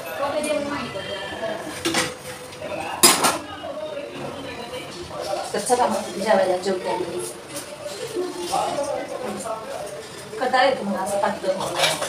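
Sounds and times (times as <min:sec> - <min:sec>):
metal utensils clattering: 0:11.5 - 0:12.0.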